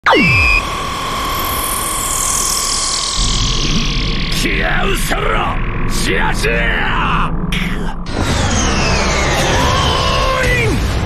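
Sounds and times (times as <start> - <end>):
falling electronic zap: 0.0 - 6.8, 7.5 - 10.4
steady electronic tone: 0.0 - 10.5
low rumble: 3.1 - 11.0.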